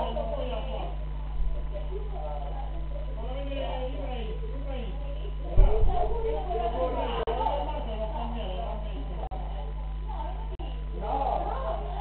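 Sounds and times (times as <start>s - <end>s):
electrical hum: 0.0s - 12.0s
people talking indistinctly: 0.0s - 12.0s.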